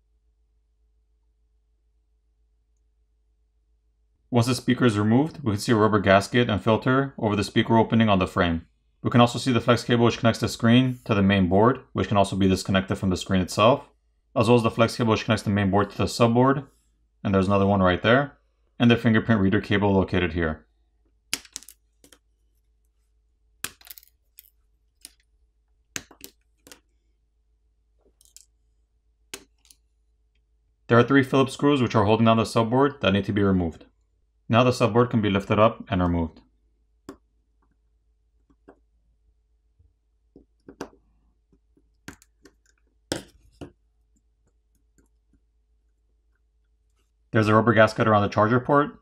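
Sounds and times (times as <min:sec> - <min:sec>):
phone parts clicking: 0:21.3 - 0:22.2, 0:23.6 - 0:25.3, 0:28.1 - 0:28.5, 0:29.4 - 0:29.8.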